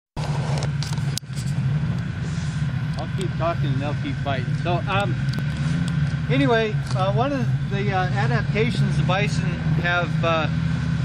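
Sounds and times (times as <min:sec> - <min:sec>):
snowmobile engines idling: 0:00.2 - 0:11.0.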